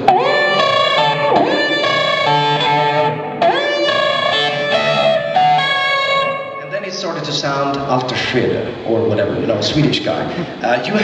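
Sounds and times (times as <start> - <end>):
electric guitar slow melody: 0.0 - 6.7.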